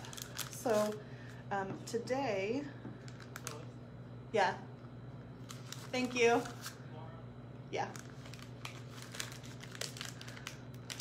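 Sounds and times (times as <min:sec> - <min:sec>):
piping bag crinkling: 0:00.0 - 0:01.4, 0:03.0 - 0:03.8, 0:05.4 - 0:06.8, 0:07.9 - 0:11.0.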